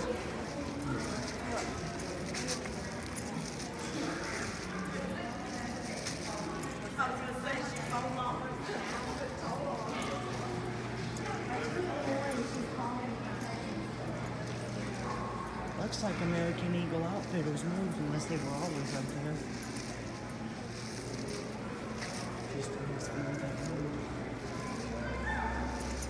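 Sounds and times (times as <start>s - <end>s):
footsteps clicking on tiled floor: 0.0s - 26.0s
voices talking: 0.0s - 26.0s.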